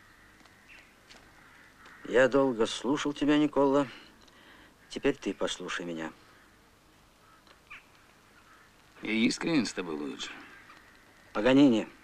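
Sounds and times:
faint bird call: 0:00.0 - 0:02.4, 0:06.1 - 0:12.0
quiet outdoor ambience: 0:00.0 - 0:12.0.

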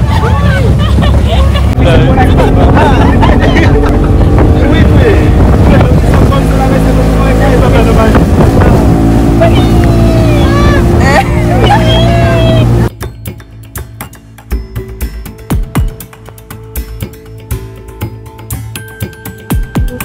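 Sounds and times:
wind buffeting microphone: 0:00.0 - 0:12.9
speedboat engine: 0:00.0 - 0:20.0.

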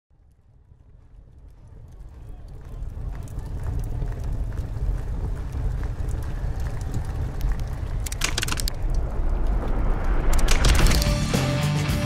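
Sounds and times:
faint crackles: 0:00.1 - 0:11.2
low rumbling: 0:00.1 - 0:11.6.

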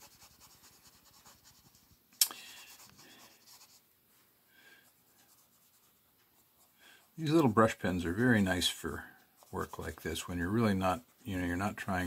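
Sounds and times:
brush pen rubbing on paper: 0:00.0 - 0:02.0, 0:02.6 - 0:03.8, 0:04.8 - 0:12.0.

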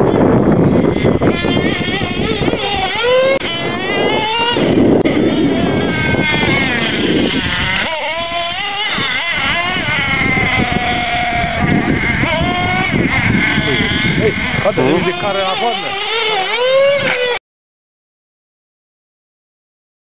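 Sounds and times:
model car engine revving: 0:00.0 - 0:17.4.

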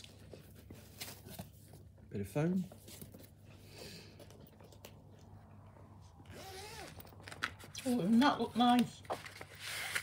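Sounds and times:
zipper rasp on carry case: 0:06.3 - 0:07.1.

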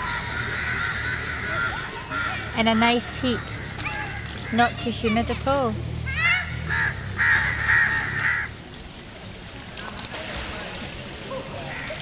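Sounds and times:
crows cawing: 0:00.0 - 0:04.9, 0:06.1 - 0:08.6, 0:11.7 - 0:12.0.

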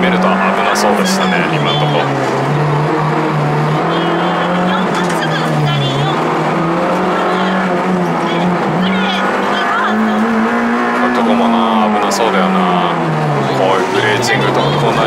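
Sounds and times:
car engine revving high: 0:00.0 - 0:15.0.

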